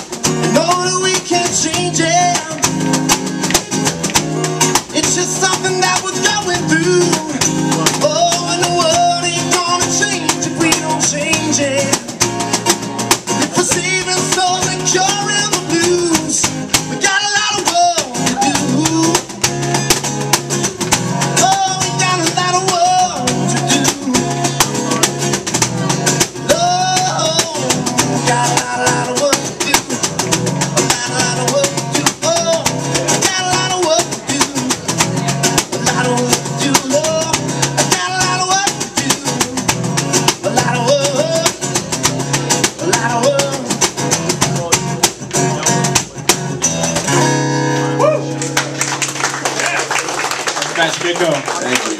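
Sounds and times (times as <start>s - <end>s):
cajon beat slapped by hand: 0.0s - 49.4s
acoustic guitar strumming: 0.0s - 49.8s
person singing wordless lines: 0.2s - 12.6s, 13.2s - 19.7s, 20.6s - 46.0s.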